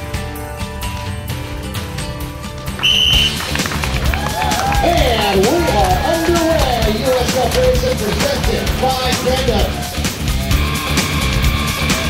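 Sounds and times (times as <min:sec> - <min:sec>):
background music: 0:00.0 - 0:12.0
shrill whistle blast: 0:02.8 - 0:03.6
people shouting: 0:04.0 - 0:07.2.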